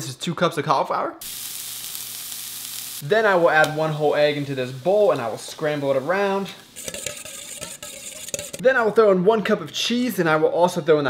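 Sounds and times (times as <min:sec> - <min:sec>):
cauliflower sizzling in a skillet: 0:01.2 - 0:08.6.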